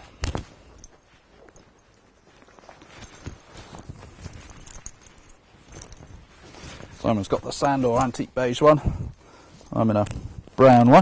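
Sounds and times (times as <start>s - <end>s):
jacket rustling: 0.0s - 11.0s
soft knocks of jacket fittings: 0.0s - 11.0s.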